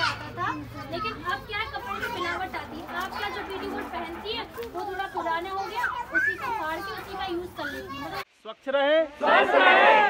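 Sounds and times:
people talking: 0.0s - 8.2s
children's voices: 0.0s - 8.3s.

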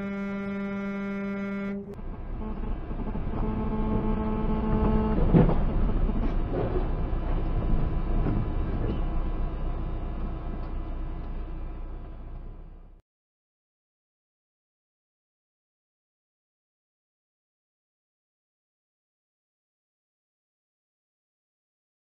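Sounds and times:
vehicle horn: 0.0s - 5.5s
road and engine noise: 0.0s - 13.0s.

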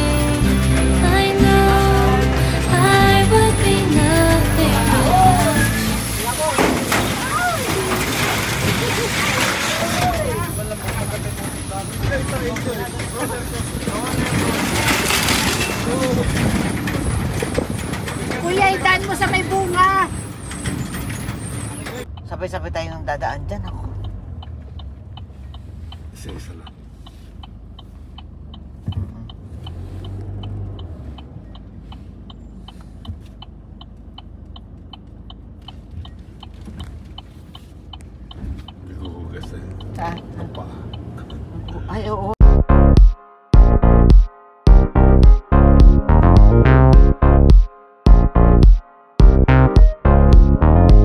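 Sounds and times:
vehicle engine rumble: 0.0s - 51.0s
people talking: 2.0s - 8.0s, 8.7s - 16.5s, 18.3s - 20.2s, 26.1s - 26.8s, 38.9s - 42.4s
turn signal ticking: 21.8s - 51.0s.

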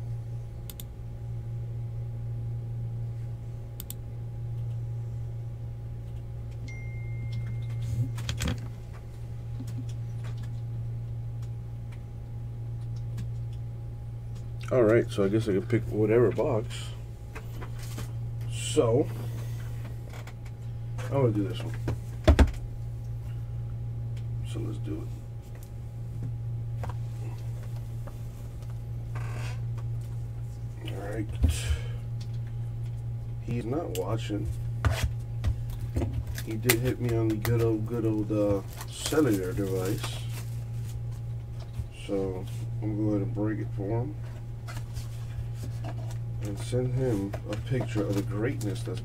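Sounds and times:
low electrical hum: 0.0s - 49.0s.

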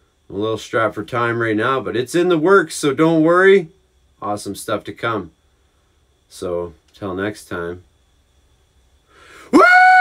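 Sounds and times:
sharp breath in: 9.1s - 9.6s
man yelling high-pitched: 9.5s - 10.0s.

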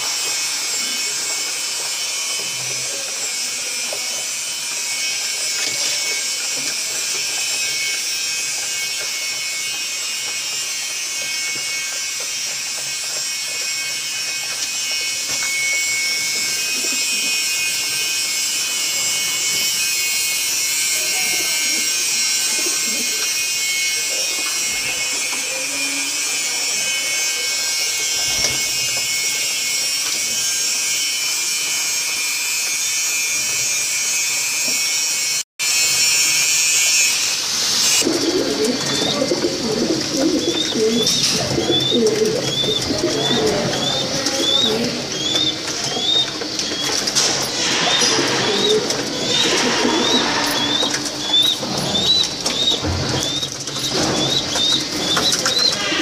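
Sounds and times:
pigeons cooing: 16.4s - 17.7s, 38.0s - 56.0s.

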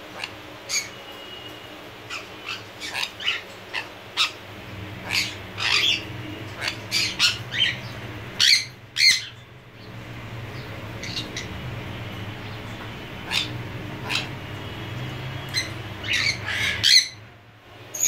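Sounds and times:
parrot squawking and chirping: 0.0s - 17.3s.

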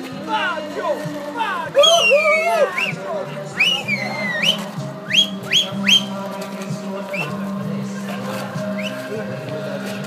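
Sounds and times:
upward sliding whistles: 3.6s - 6.1s.

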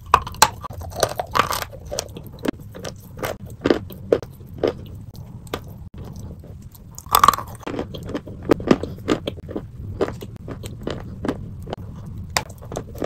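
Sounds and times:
chalk crunching as chewed: 0.0s - 13.0s.

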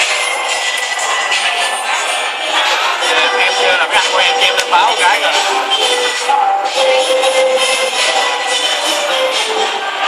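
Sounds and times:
background music: 0.0s - 10.0s
steady noisy din: 0.0s - 10.0s.

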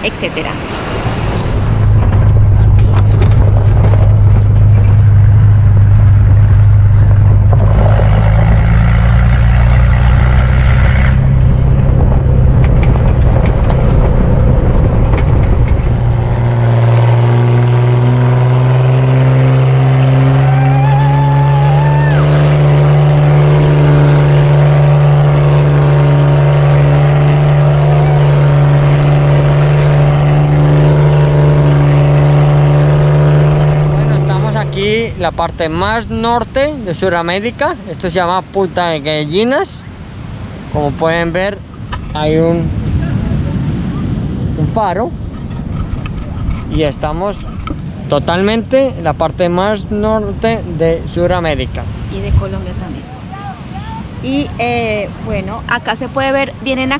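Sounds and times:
van engine droning: 1.1s - 37.3s.

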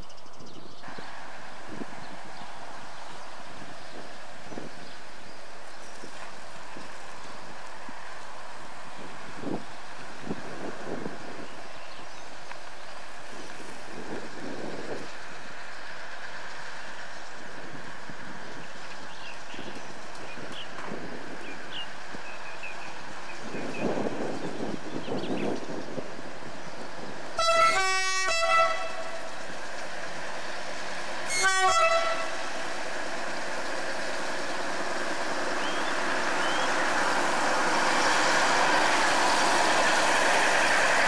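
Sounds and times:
rush of approaching locomotive: 0.0s - 41.0s
train horn blasts: 27.4s - 29.3s, 31.2s - 32.4s.

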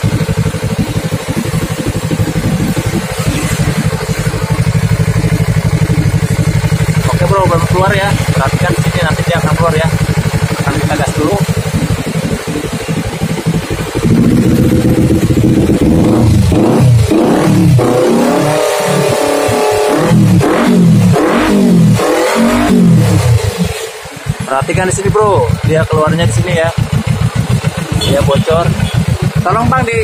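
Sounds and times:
motorcycle engine idling and revving: 0.0s - 30.0s.

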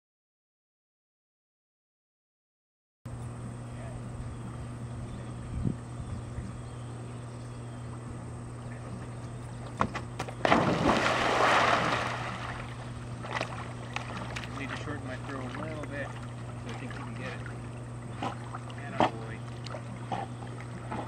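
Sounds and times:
steady low hum: 3.1s - 21.0s
dog splashing into water: 9.9s - 17.6s.

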